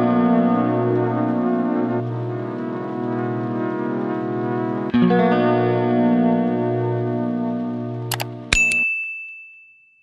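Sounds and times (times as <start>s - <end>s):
background guitar music: 0.0s - 8.8s
quick clicks: 8.1s - 8.8s
bright bell ding: 8.1s - 10.0s.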